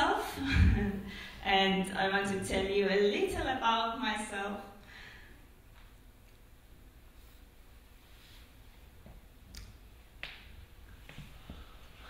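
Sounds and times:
low hum: 0:00.0 - 0:03.6.

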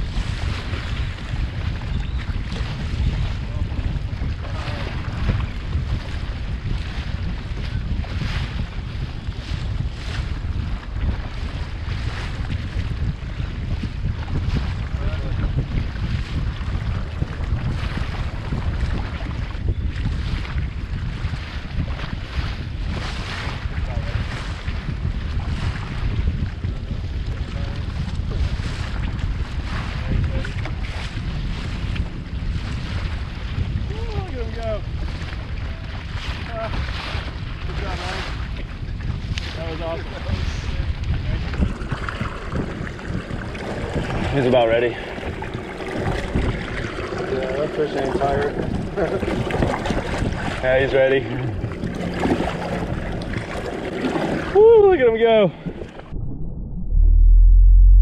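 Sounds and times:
water slapping and splashing: 0:00.0 - 0:56.2
wind buffeting microphone: 0:00.0 - 0:58.0.

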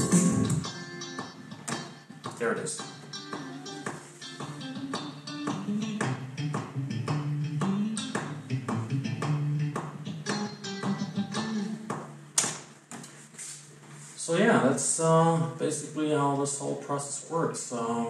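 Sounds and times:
electric rhythm guitar: 0:00.0 - 0:13.5
metronome clicking: 0:00.6 - 0:11.7.

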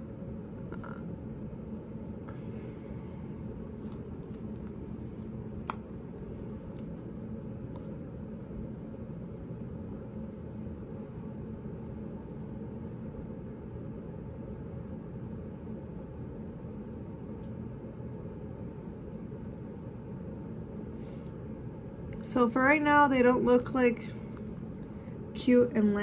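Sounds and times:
low room rumble: 0:00.0 - 0:26.0.

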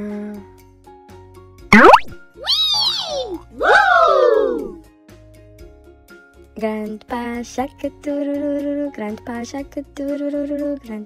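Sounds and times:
cartoon rising zip: 0:01.8 - 0:02.2
swooping pitched tone: 0:01.8 - 0:02.2.

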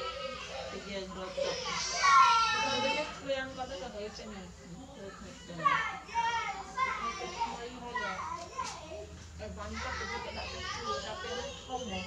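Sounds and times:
children talking and calling: 0:00.0 - 0:12.0.

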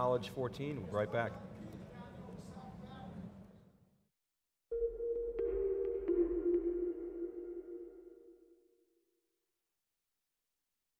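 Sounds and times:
low electronic tone: 0:04.7 - 0:08.9.

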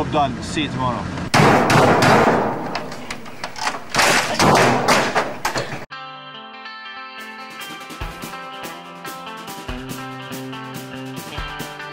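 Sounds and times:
heavy thumps and bangs on equipment: 0:01.3 - 0:05.9.

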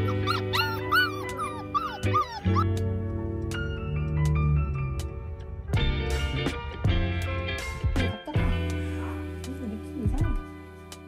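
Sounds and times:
puppy whimpering: 0:00.0 - 0:02.7
background music: 0:00.0 - 0:11.0.

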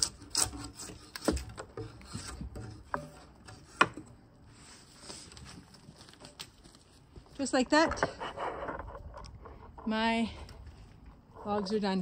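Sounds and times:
drawknife scraping bark off log: 0:00.0 - 0:04.1.

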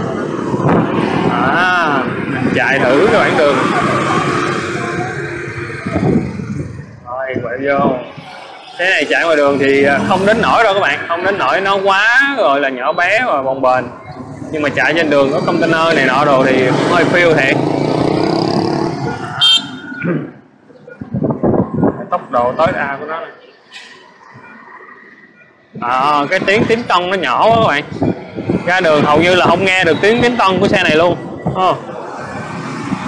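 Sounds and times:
street traffic: 0:00.0 - 0:33.0
wind and road noise: 0:00.0 - 0:33.0.

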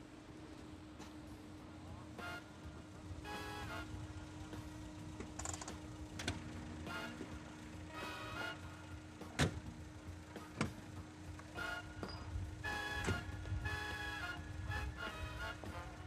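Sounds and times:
music playing: 0:00.8 - 0:16.0
car engine stopping: 0:02.9 - 0:15.5.

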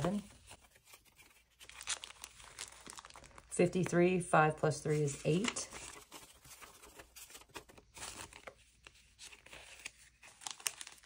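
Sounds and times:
paper bills rustling and crinkling: 0:00.0 - 0:11.0.

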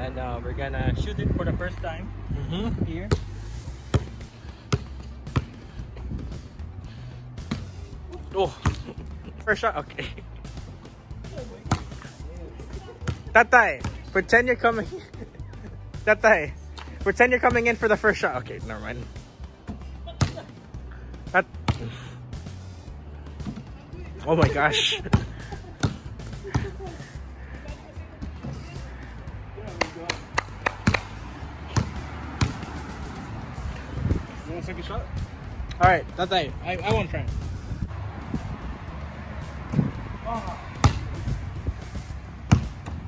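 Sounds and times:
music: 0:00.0 - 0:43.0
basketball bouncing on concrete: 0:03.0 - 0:06.2, 0:11.6 - 0:14.3, 0:19.7 - 0:20.5, 0:24.4 - 0:27.0, 0:29.6 - 0:32.9, 0:39.6 - 0:41.5, 0:42.4 - 0:43.0.

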